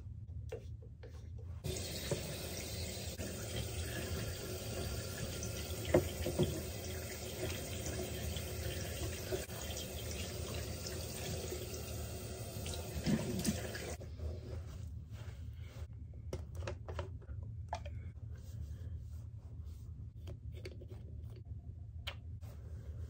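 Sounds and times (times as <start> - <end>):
tap water running into sink: 1.6 - 14.0.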